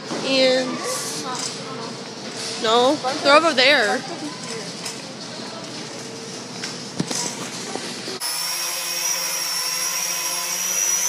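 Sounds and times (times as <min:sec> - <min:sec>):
store background noise: 0:00.0 - 0:08.4
toy drone high-pitched whine: 0:08.2 - 0:11.0.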